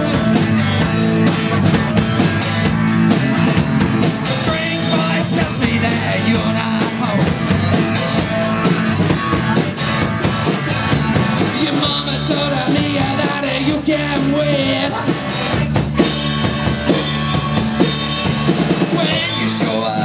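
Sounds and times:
drum kit: 0:00.0 - 0:20.0
electric guitars: 0:00.0 - 0:20.0.

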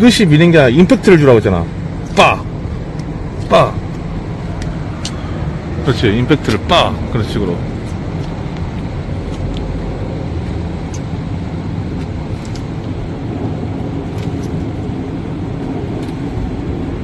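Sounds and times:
low rumble: 0:00.0 - 0:17.0.

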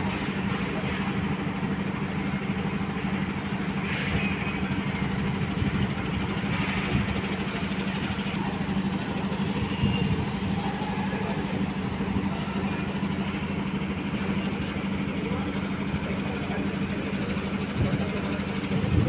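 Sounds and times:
rail vehicle engine hum: 0:00.0 - 0:19.0.

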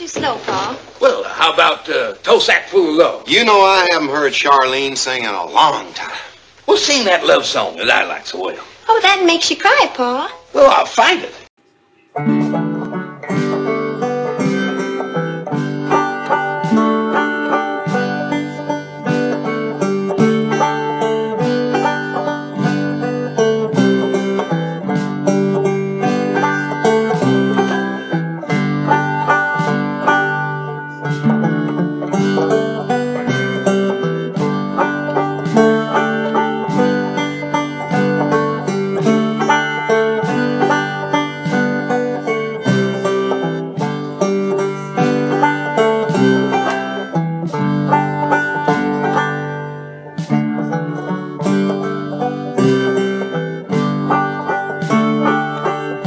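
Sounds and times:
guitar: 0:00.0 - 0:08.2, 0:08.9 - 0:56.0
picked banjo notes: 0:00.0 - 0:56.0.

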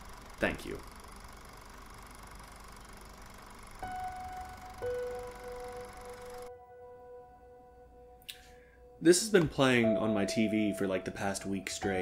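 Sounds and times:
faint steady hiss: 0:00.0 - 0:06.5.

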